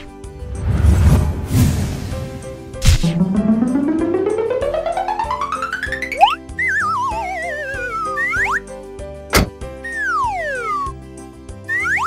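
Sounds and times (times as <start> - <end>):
background music: 0.0 - 12.0
quick rising swoops: 0.4 - 4.4
sharp pop: 2.8 - 3.2, 9.3 - 9.6
wobbling falling whistle: 6.2 - 8.6.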